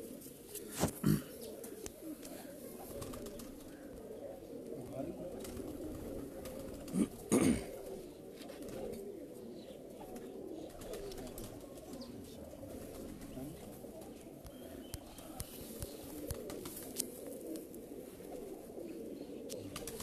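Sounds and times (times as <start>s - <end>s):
pigeons cooing: 0.0s - 20.0s.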